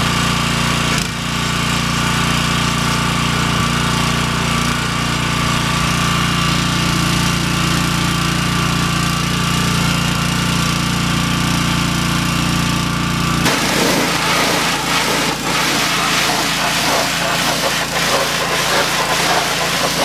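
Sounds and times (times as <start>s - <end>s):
pressure washer spraying: 13.4s - 20.0s.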